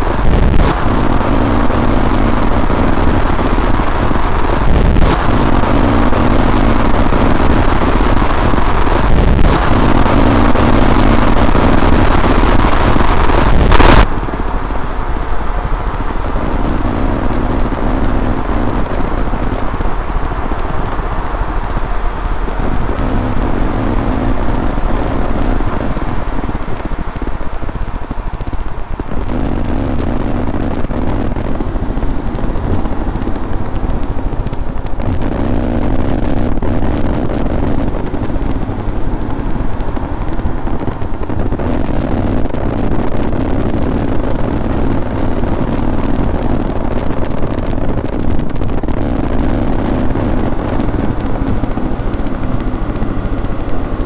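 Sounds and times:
harsh distorted static noise music: 0.0s - 54.0s.

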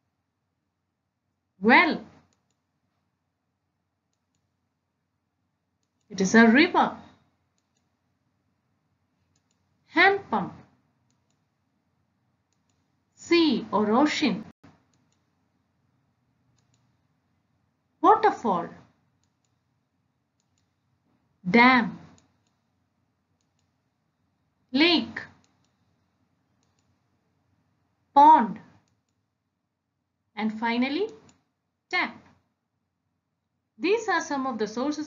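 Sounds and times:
faint quick clicks: 16.5s - 16.9s.

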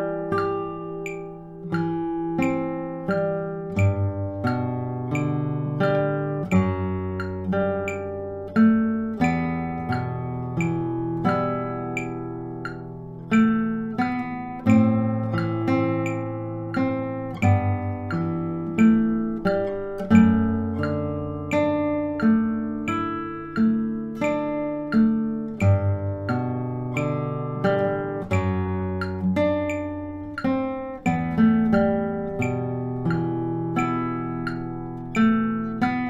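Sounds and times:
classical guitar fingerstyle: 0.0s - 36.0s.

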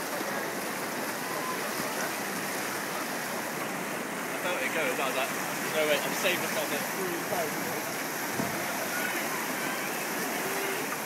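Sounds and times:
white water rushing through channel: 0.0s - 11.0s.

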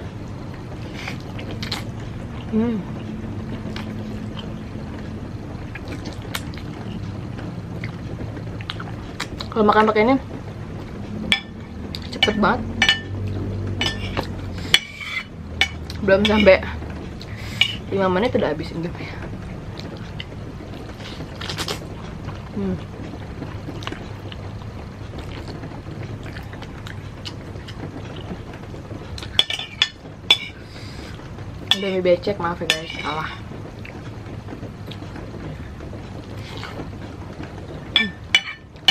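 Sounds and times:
low hum: 0.0s - 38.9s.

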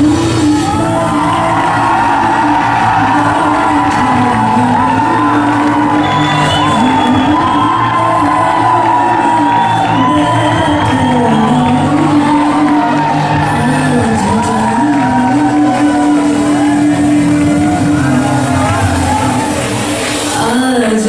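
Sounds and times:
pop dance music over sound system: 0.0s - 21.0s.

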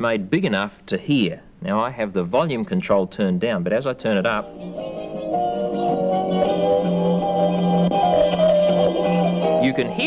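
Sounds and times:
music from cassette player speakers: 4.4s - 10.0s.

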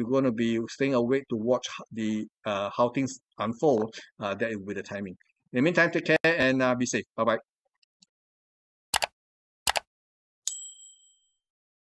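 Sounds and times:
notification bell chime: 10.5s - 11.4s.

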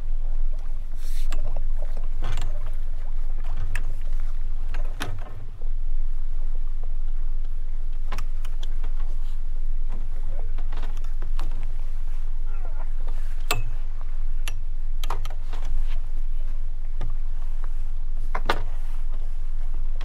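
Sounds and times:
low rumble: 0.0s - 20.0s.

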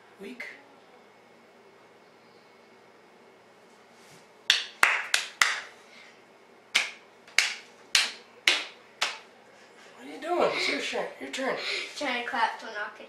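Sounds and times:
child clapping hands: 4.5s - 5.7s, 6.8s - 9.2s.

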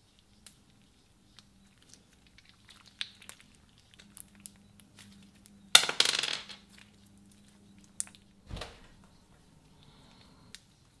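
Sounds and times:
slime clicking and crackling: 0.2s - 5.6s.

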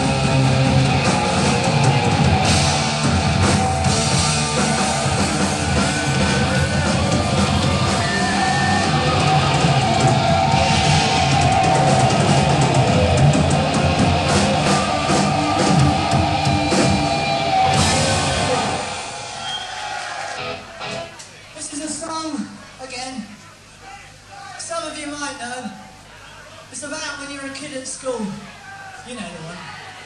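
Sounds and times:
heavy rock band playing: 0.0s - 21.2s.

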